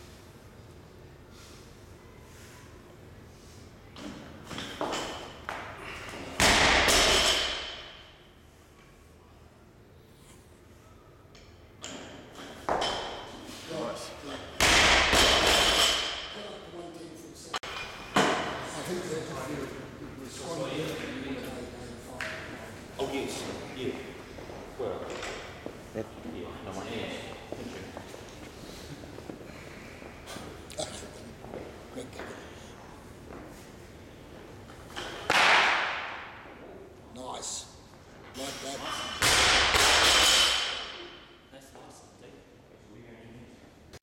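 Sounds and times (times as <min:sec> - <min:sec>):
barbell crashing onto floor: 0:06.4 - 0:07.9, 0:14.6 - 0:16.3, 0:39.2 - 0:41.0.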